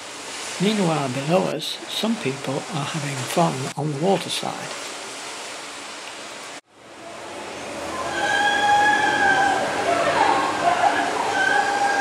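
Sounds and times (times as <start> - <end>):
water rushing down slide: 0.0 - 12.0.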